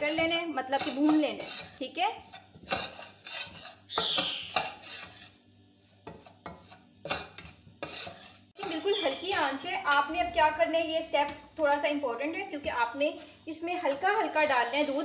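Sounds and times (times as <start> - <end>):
metal spoon scraping saucepan: 0.0 - 5.4, 6.0 - 10.1.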